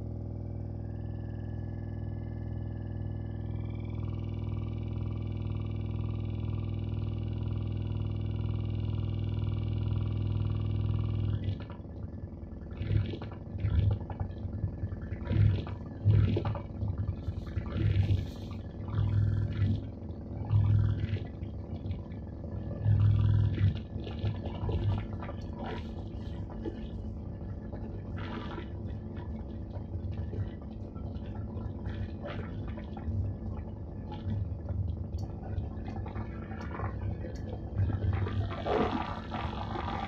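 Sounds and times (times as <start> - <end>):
electronic drone with pulse: 0.0 - 40.0
crackling bursts: 22.7 - 40.0.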